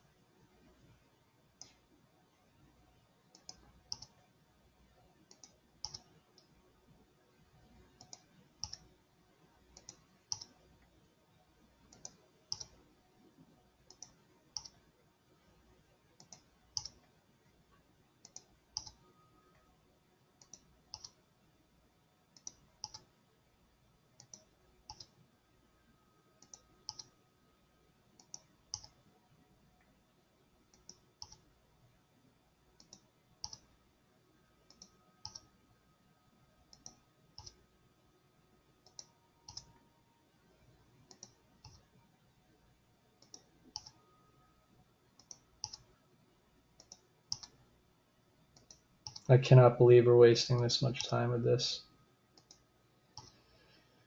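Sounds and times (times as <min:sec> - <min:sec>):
low room hum: 0:00.0 - 0:54.0
computer input clicks: 0:03.3 - 0:04.2, 0:05.3 - 0:06.5, 0:08.0 - 0:08.9, 0:09.8 - 0:10.6, 0:11.9 - 0:12.8, 0:13.9 - 0:14.8, 0:16.2 - 0:17.1, 0:18.2 - 0:19.0, 0:20.4 - 0:21.2, 0:22.4 - 0:23.1, 0:24.2 - 0:25.1, 0:26.4 - 0:27.1, 0:28.2 - 0:29.0, 0:30.8 - 0:31.5, 0:34.7 - 0:35.5, 0:36.7 - 0:37.6, 0:38.8 - 0:39.8, 0:43.2 - 0:44.0, 0:45.2 - 0:45.9, 0:46.8 - 0:47.6, 0:48.6 - 0:49.3.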